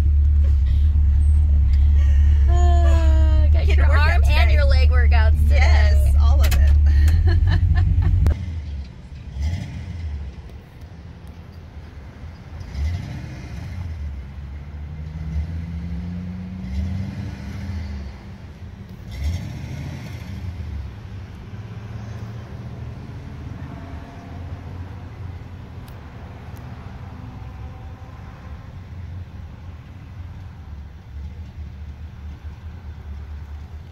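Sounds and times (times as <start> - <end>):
distant car engine surging: 0.0 - 10.6.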